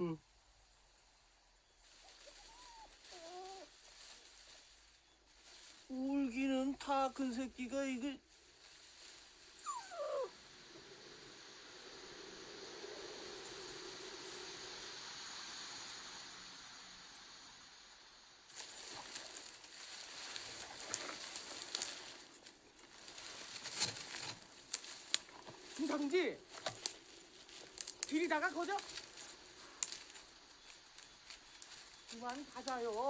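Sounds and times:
wind through reeds: 0:01.6 - 0:33.0
dry reed stalks rustling: 0:01.7 - 0:14.8, 0:18.4 - 0:33.0.

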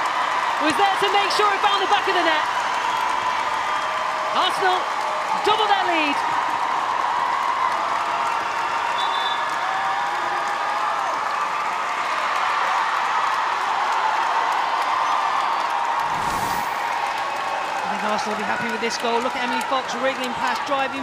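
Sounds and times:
stadium crowd cheering: 0:00.0 - 0:21.0
rush of noise: 0:16.0 - 0:17.0.

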